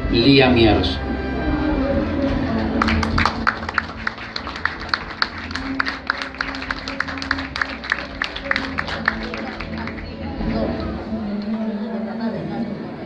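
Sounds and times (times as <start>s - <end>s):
soft background music: 0.0s - 13.0s
small audience clapping: 2.5s - 11.5s.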